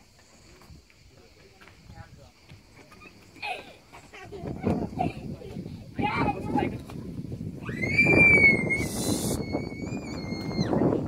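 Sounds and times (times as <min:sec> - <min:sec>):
long high whistle: 0:07.7 - 0:10.8
brief hiss: 0:08.8 - 0:09.4.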